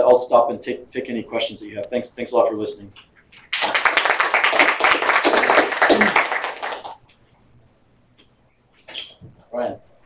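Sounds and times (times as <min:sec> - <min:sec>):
audience applauding: 0:03.5 - 0:07.0.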